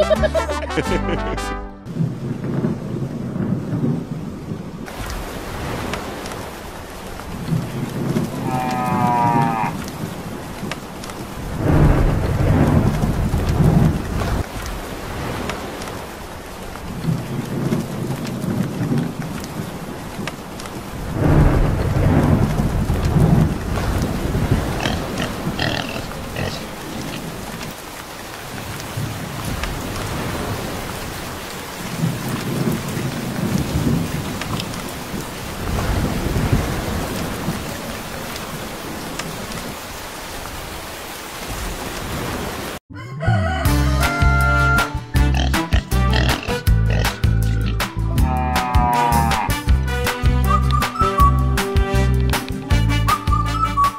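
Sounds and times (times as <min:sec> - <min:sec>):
heavy rain: 0:00.0 - 0:53.8
rolling thunder: 0:01.9 - 0:06.2, 0:11.3 - 0:15.8, 0:20.8 - 0:26.4, 0:29.0 - 0:39.7.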